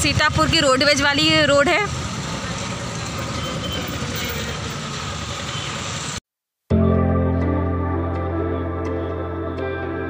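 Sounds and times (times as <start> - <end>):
city road traffic: 0.0 - 10.0
background music sustained notes: 6.7 - 10.0.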